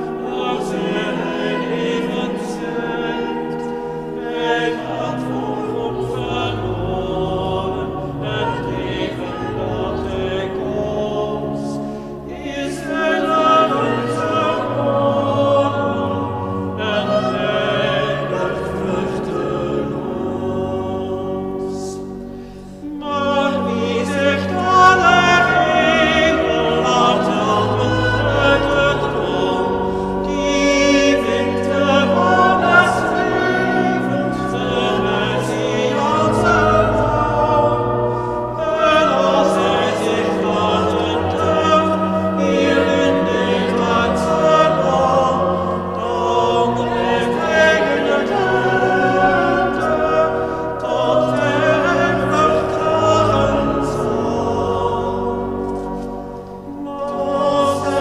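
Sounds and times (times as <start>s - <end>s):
church choir singing: 0.0s - 58.0s.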